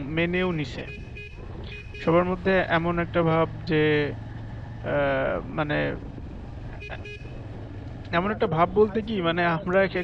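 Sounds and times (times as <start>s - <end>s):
vehicle horn toot: 0.8s - 2.2s, 6.8s - 7.4s
person speaking: 8.1s - 10.0s.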